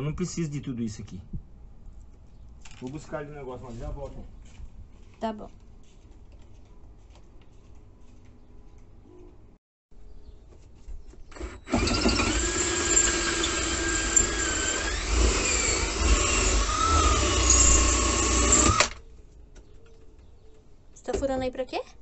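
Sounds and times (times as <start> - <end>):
cordless drill whining: 11.3 - 19.0.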